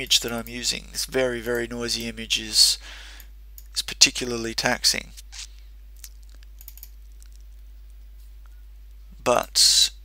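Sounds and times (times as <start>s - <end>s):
low electrical hum: 0.0s - 10.0s
computer clicks: 6.0s - 7.4s.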